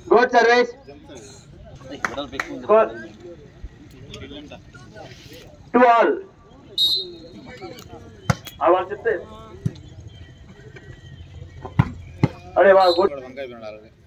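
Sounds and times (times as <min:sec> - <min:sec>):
high whistle: 0:06.8 - 0:07.5, 0:12.8 - 0:13.2.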